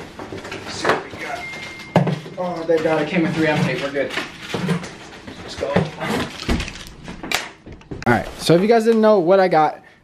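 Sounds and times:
cardboard and plastic crinkling: 0:02.4 - 0:07.2.

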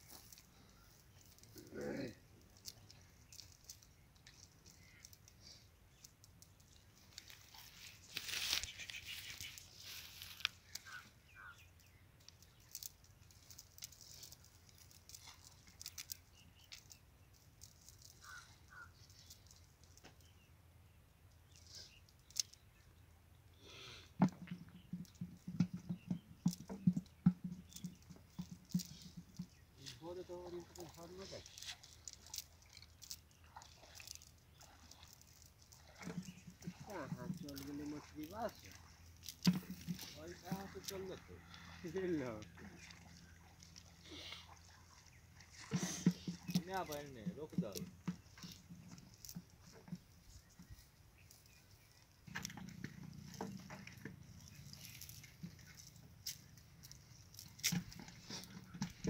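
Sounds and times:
net rustling and clicking: 0:01.1 - 0:11.1, 0:12.2 - 0:20.2, 0:26.4 - 0:41.2, 0:45.5 - 0:59.0
person speaking: 0:01.5 - 0:02.2, 0:10.0 - 0:11.6, 0:29.8 - 0:31.7, 0:36.7 - 0:38.8, 0:39.5 - 0:42.8, 0:45.7 - 0:47.9
low thumps and taps: 0:24.2 - 0:29.6.

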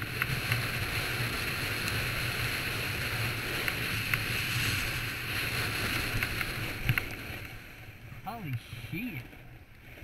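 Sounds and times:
snowboard sliding on snow: 0:00.0 - 0:09.2
wind on microphone: 0:00.0 - 0:10.0.

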